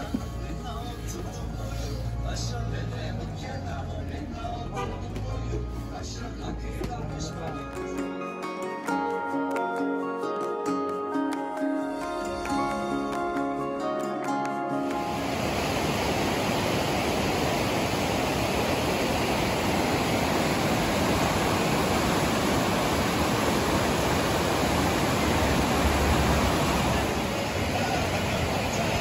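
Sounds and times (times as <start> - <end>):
river rushing over rocks: 14.8 - 29.0.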